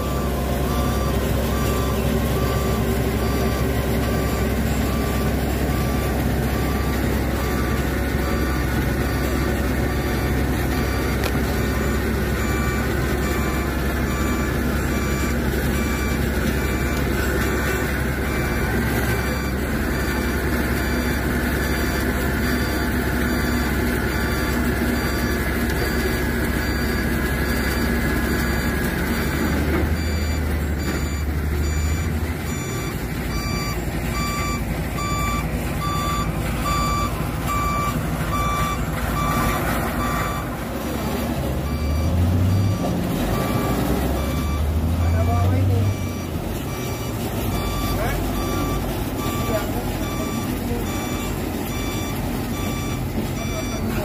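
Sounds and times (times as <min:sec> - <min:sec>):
reversing alarm beeping: 0:00.0 - 0:40.6, 0:41.5 - 0:54.0
large engine running: 0:00.0 - 0:54.0.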